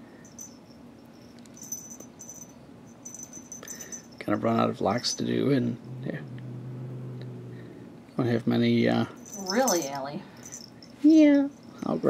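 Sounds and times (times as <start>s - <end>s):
small bell jingling: 0.0s - 5.3s, 9.2s - 12.0s.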